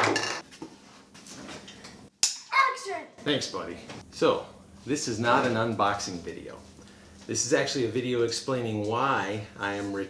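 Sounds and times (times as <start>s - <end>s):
items knocking and handling: 0.0s - 0.8s.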